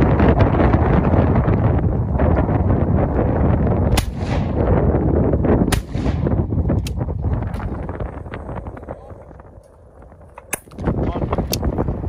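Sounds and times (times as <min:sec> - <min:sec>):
wind buffeting microphone: 0:00.0 - 0:12.0
shotgun shots: 0:03.9 - 0:04.7, 0:05.6 - 0:06.4.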